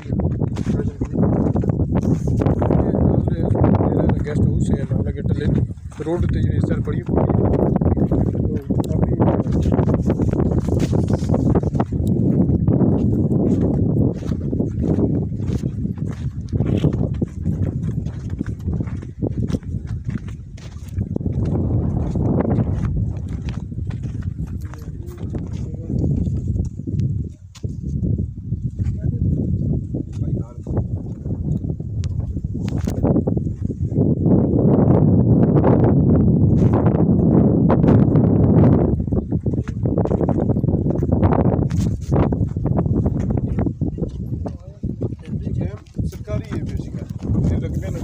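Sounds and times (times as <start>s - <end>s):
footsteps crunching on stony ground: 0.0s - 48.0s
wind rumble on microphone: 0.0s - 48.0s.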